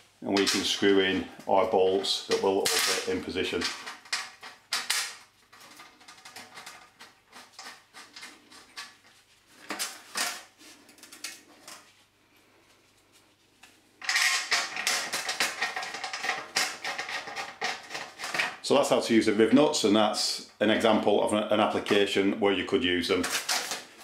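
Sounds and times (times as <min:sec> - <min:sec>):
rapid clicks and rattles: 0:02.3 - 0:09.0, 0:14.0 - 0:18.7
metal clicking and scraping: 0:02.3 - 0:09.1.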